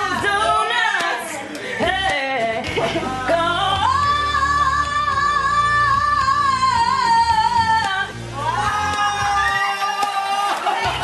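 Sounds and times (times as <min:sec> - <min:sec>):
woman singing into a microphone: 0:00.0 - 0:09.9.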